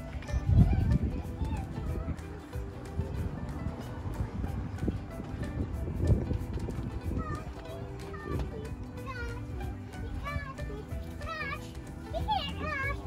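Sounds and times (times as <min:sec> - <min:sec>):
background music: 0:00.0 - 0:13.0
children calling and squealing: 0:00.0 - 0:13.0.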